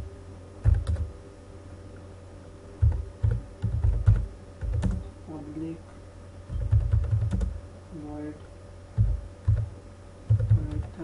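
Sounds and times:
typing on computer keyboard: 0:00.6 - 0:01.1, 0:02.8 - 0:05.0, 0:06.5 - 0:07.6, 0:09.0 - 0:09.7, 0:10.3 - 0:10.9.

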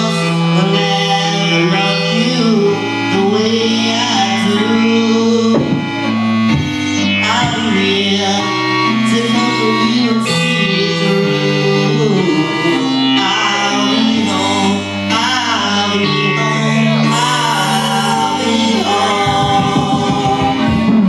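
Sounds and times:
electric keyboard chords: 0:00.0 - 0:21.0
low bass line: 0:00.0 - 0:21.0.

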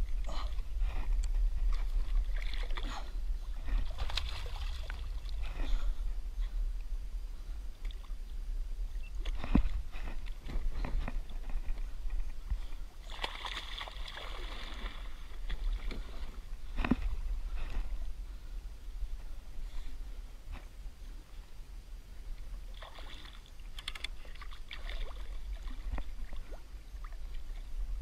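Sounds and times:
water splashing against hull: 0:00.0 - 0:06.0, 0:09.0 - 0:19.4, 0:22.4 - 0:28.0
wind rumble on microphone: 0:00.0 - 0:13.1, 0:14.0 - 0:22.8, 0:23.6 - 0:28.0.

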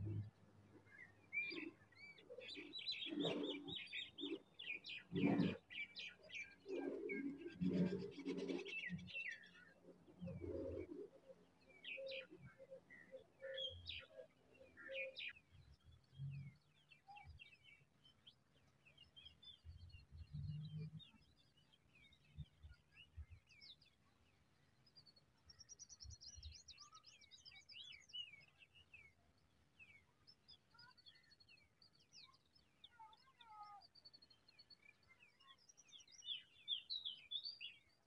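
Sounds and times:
birds chirping: 0:00.0 - 0:24.0.

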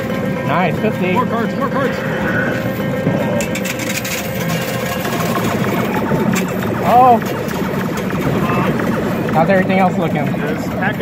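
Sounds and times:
arcade din: 0:00.0 - 0:11.0
arcade machine music: 0:00.0 - 0:11.0
coins clinking in machine: 0:03.4 - 0:08.0.

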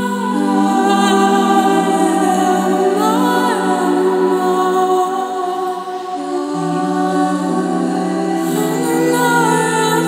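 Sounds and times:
choir-like held vocal tones: 0:00.0 - 0:10.0.

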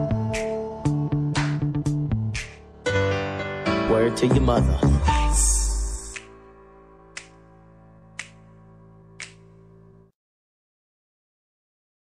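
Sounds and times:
held music chord: 0:00.0 - 0:10.1
finger snaps: 0:00.3 - 0:00.6, 0:01.3 - 0:02.6, 0:06.0 - 0:06.5, 0:07.1 - 0:08.6, 0:09.2 - 0:09.6.

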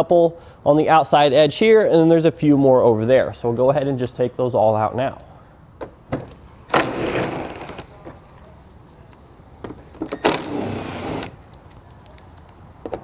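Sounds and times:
impact driver running: 0:06.7 - 0:07.8, 0:10.2 - 0:11.4.

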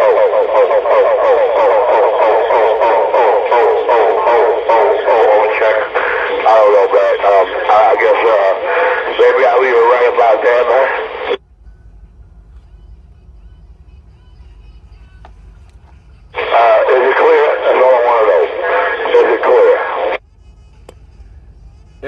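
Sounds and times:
man's voice over cb radio: 0:00.0 - 0:11.4, 0:16.3 - 0:20.2
low steady hum: 0:00.0 - 0:22.0.

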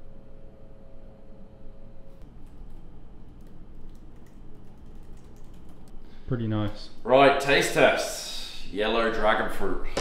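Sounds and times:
laptop keyboard typing: 0:02.4 - 0:05.9.

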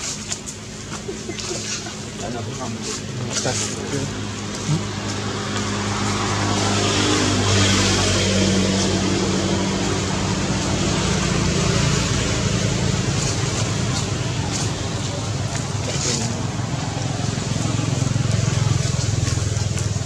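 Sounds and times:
low droning hum: 0:01.8 - 0:20.0.

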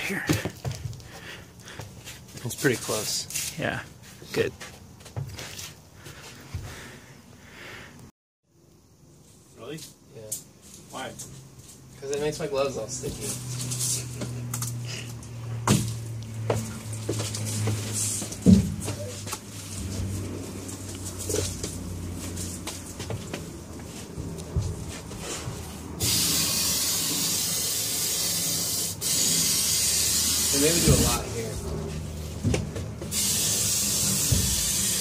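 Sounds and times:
boards knocking and thumping: 0:15.6 - 0:19.0, 0:32.4 - 0:33.1
aerosol spray hissing: 0:26.0 - 0:31.2, 0:33.1 - 0:35.0.

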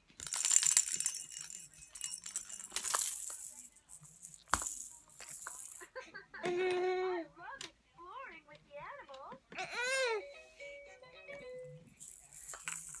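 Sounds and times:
plastic rattle ball shaking: 0:00.0 - 0:06.0, 0:12.0 - 0:13.0.

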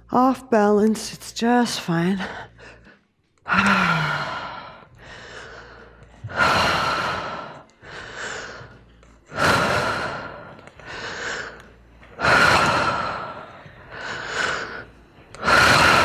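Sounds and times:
woman breathing deeply through mouth: 0:02.4 - 0:16.0.

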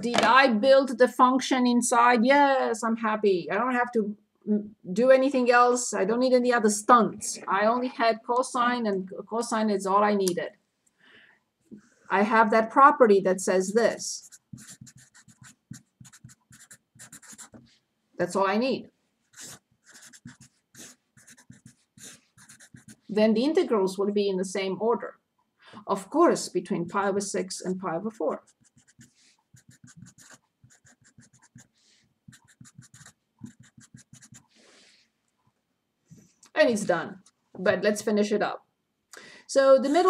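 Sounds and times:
marker scratching on paper: 0:14.2 - 0:17.7, 0:19.3 - 0:23.1, 0:28.3 - 0:34.6.

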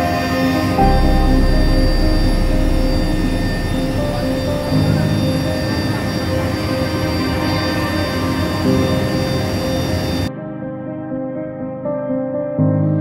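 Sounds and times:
helicopter engine drone: 0:00.0 - 0:10.3
background music: 0:00.0 - 0:13.0
deep low rumble: 0:00.8 - 0:06.8.

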